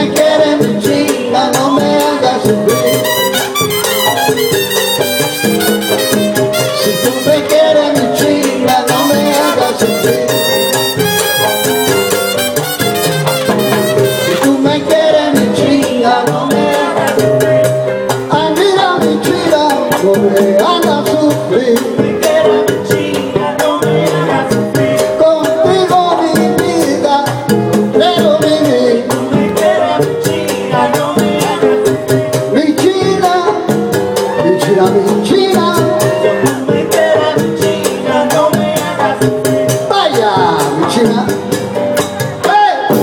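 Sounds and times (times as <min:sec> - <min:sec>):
congas and timbales rhythm: 0:00.0 - 0:43.0
latin band playing salsa: 0:00.0 - 0:43.0.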